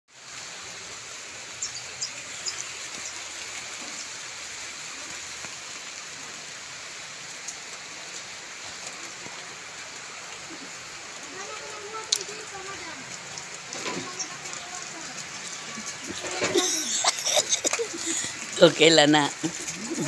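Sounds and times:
steady rain hiss: 0.1s - 20.0s.

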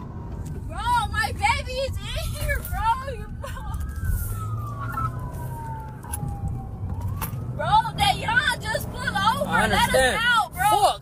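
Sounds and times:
low road rumble: 0.0s - 11.0s
police siren wailing: 0.0s - 11.0s.

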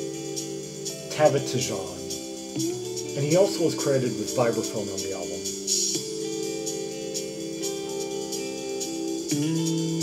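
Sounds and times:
light cymbal strokes: 0.0s - 10.0s.

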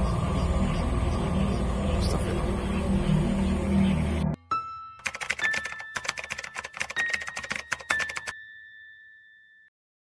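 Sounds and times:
rapid irregular clicking: 5.0s - 8.3s.

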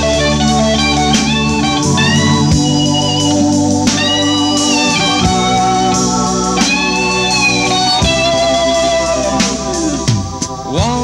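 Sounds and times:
electric guitar lead notes: 0.0s - 11.0s
live rock band: 0.0s - 11.0s.

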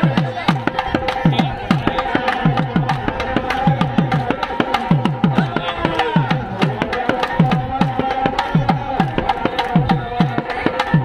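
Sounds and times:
barrel drum beating fast rhythm: 0.0s - 11.0s.

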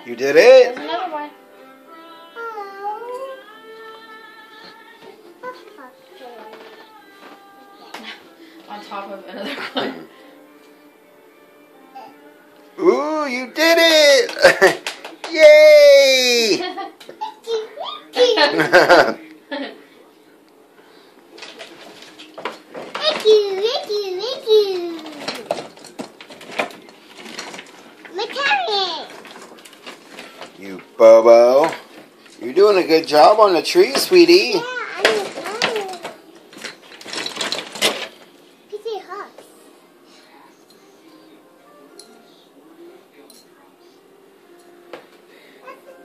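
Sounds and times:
girl's sing-song voice: 1.8s - 9.6s.

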